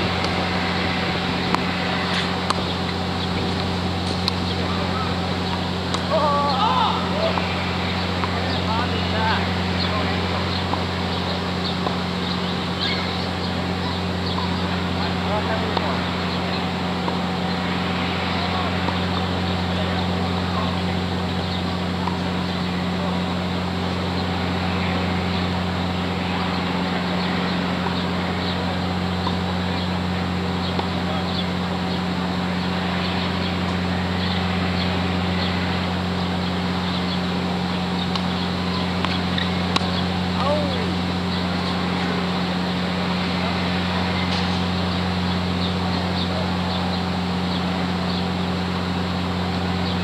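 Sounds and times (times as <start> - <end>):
low mechanical hum with hiss: 0.0 - 50.0
tennis ball hitting racket: 1.5 - 2.8, 30.7 - 31.0.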